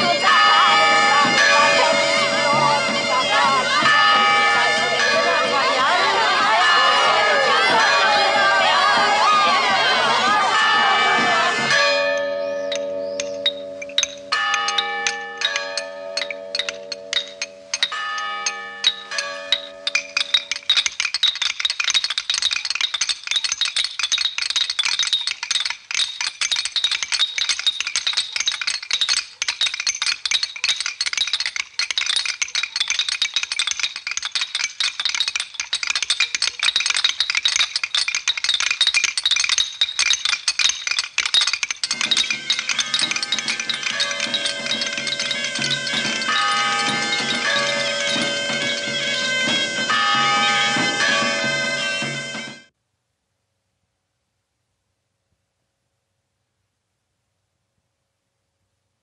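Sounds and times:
voices: 0.0 - 13.8
dense rattling and clinking: 0.0 - 52.7.

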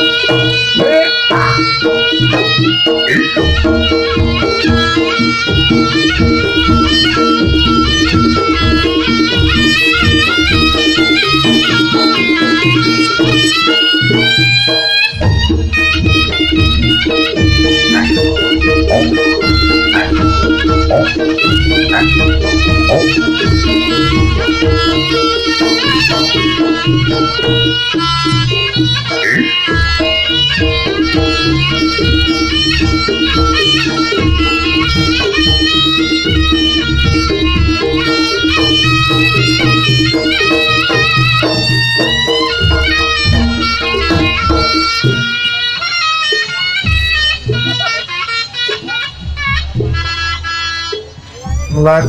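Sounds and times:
hand drums: 0.0 - 52.0
shawm sliding melody: 0.0 - 52.0
low drum and gong: 15.2 - 27.6.

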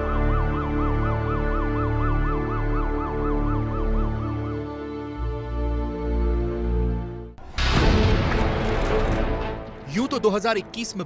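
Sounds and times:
fast wailing emergency siren: 0.0 - 5.0.

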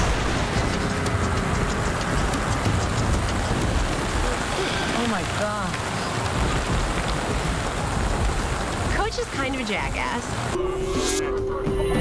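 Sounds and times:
wind rumbling: 0.0 - 10.6
heavy rain downpour: 0.0 - 12.0.

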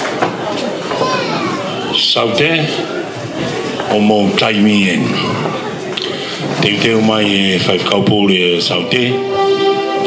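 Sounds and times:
children chattering and calling: 0.0 - 7.5.

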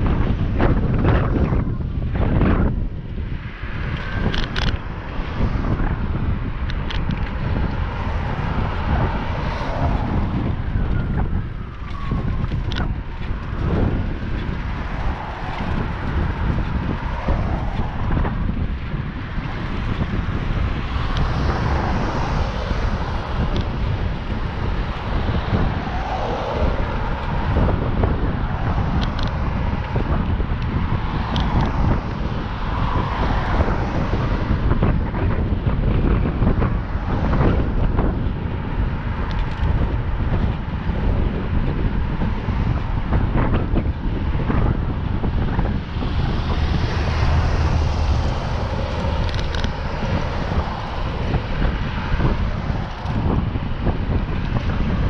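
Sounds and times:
road traffic passing: 0.0 - 55.0
wind rushing over microphone: 0.0 - 55.0.

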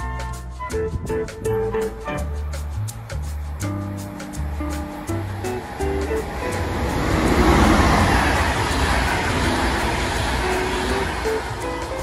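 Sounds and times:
background music with bass line: 0.0 - 12.0
passenger train rushing past: 1.0 - 12.0.

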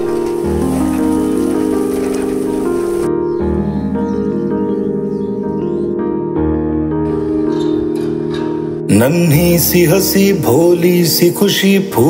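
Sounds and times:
ambient music of sustained chords: 0.0 - 11.0.

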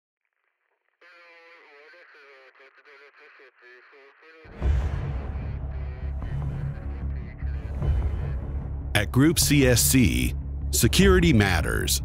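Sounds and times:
faint voice over radio: 1.0 - 4.5.

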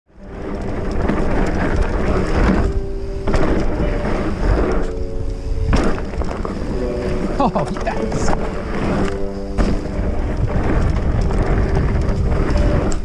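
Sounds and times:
bike hub freewheeling buzz: 0.2 - 7.4, 8.4 - 13.0
tyre rumble over dirt: 0.2 - 13.0
wind rushing on microphone: 0.2 - 13.0.

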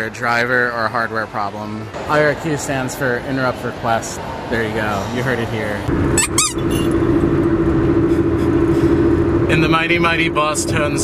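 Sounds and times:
car engine and road noise drone: 0.0 - 11.0.

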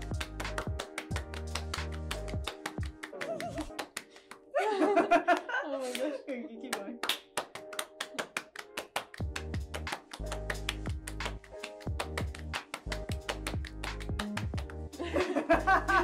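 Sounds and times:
hand claps and palm slaps: 0.0 - 4.5, 5.3 - 6.1, 6.7 - 14.9
background music with beat: 0.0 - 16.0.

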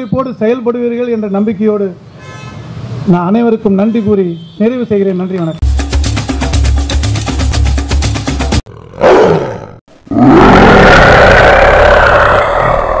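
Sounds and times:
music with steady drumbeat: 5.6 - 8.6
tiger roar: 8.7 - 13.0.

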